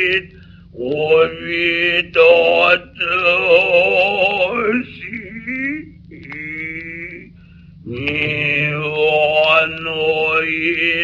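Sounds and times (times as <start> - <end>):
man chanting: 0.0 - 11.0
record surface noise: 0.0 - 11.0.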